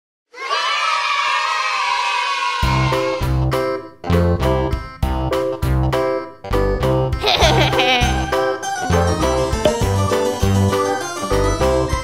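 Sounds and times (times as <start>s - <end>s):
children cheering and shouting: 0.3s - 3.2s.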